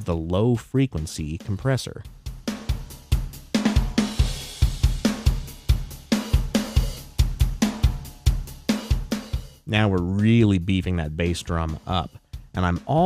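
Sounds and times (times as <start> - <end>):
drum kit steady beat: 0.0 - 13.0.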